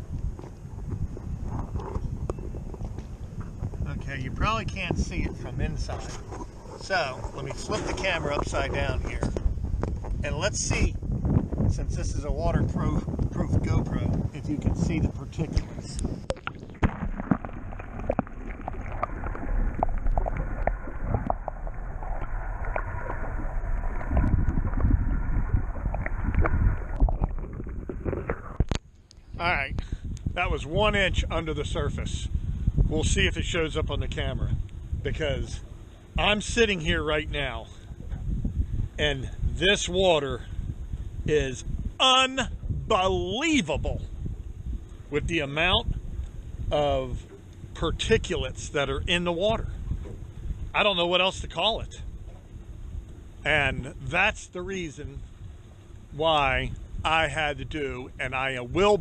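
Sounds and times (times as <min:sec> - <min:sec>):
low rumble: 0:00.0 - 0:43.2
muffled water sloshing underwater: 0:00.0 - 0:59.0
water sloshing against a housing: 0:04.9 - 0:10.3, 0:16.2 - 0:29.3.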